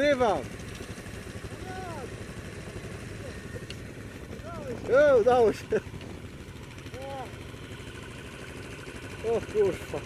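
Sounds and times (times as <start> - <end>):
quad engine idling: 0.0 - 10.0.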